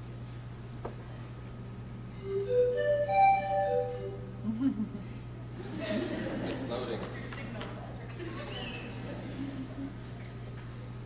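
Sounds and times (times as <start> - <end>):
wooden flute notes: 2.2 - 4.3.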